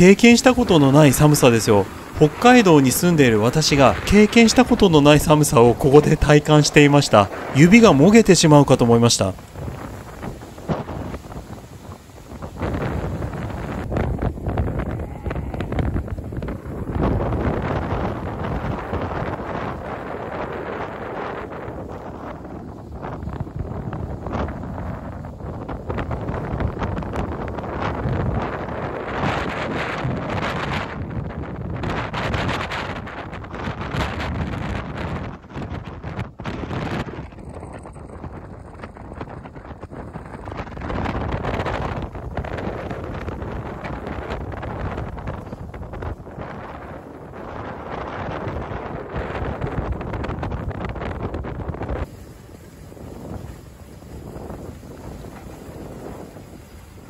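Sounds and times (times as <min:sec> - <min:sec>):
ship running noise: 0:00.0 - 0:57.0
wind buffeting microphone: 0:00.0 - 0:57.0.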